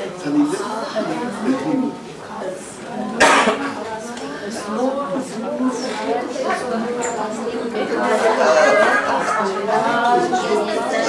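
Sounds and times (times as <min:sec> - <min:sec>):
voices talking over one another: 0:03.1 - 0:11.0.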